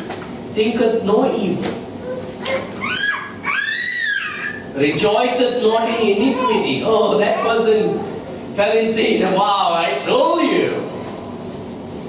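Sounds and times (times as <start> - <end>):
young child squealing: 2.0 - 4.7.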